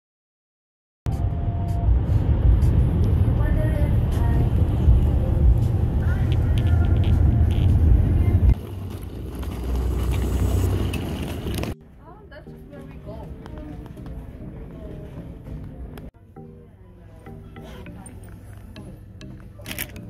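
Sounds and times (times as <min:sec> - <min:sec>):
road and engine rumble in car: 0:01.1 - 0:11.8
faint voices: 0:03.3 - 0:08.6, 0:11.9 - 0:20.0.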